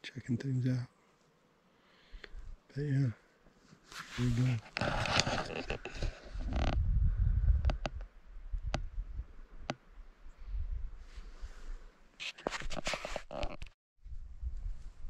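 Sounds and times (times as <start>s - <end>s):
camera handling rustle: 3.8s - 6.8s, 12.2s - 13.8s
wind rumble on microphone: 4.9s - 9.7s, 10.3s - 11.8s, 14.0s - 15.0s.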